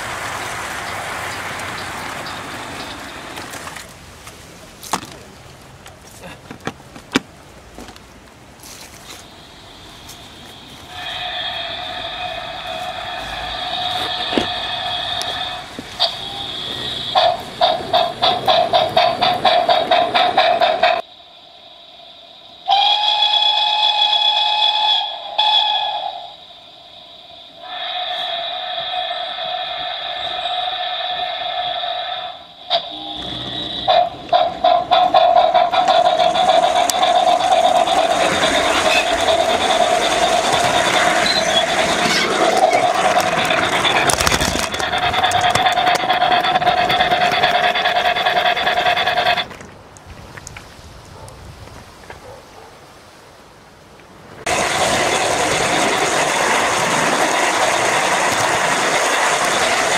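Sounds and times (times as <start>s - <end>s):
model train running on track: 0.0s - 4.2s, 9.2s - 49.7s, 54.4s - 59.9s
high whistling tone: 9.2s - 18.4s, 20.7s - 49.4s.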